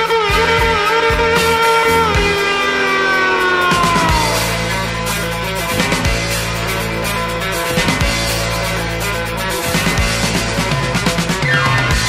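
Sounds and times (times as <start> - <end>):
instrumental rock music: 0.0 - 12.0.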